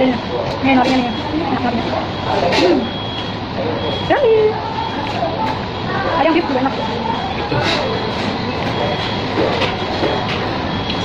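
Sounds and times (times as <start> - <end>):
people talking: 0.0 - 11.0
high electronic beep: 1.0 - 4.2, 7.0 - 11.0.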